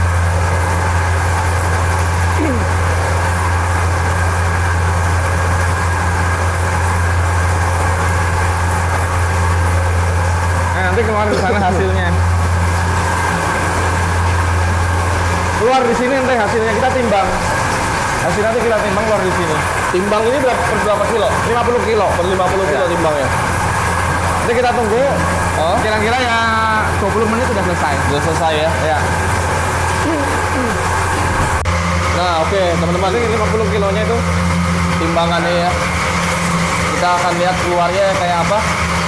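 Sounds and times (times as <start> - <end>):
mixing machine humming: 0.0 - 39.0
person speaking: 10.7 - 12.3.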